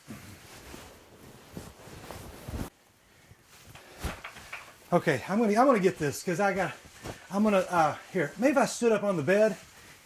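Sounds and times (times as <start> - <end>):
cloth rustling: 0.0 - 10.0.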